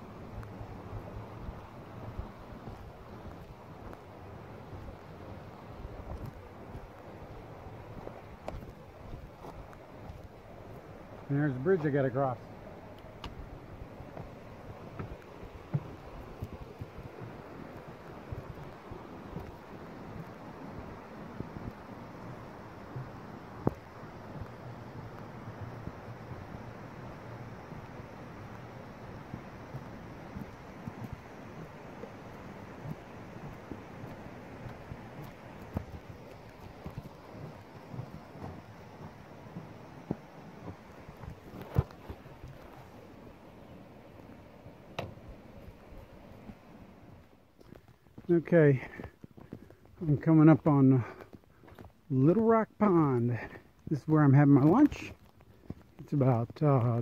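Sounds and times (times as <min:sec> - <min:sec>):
river rushing over rocks: 0:00.0 - 0:47.5.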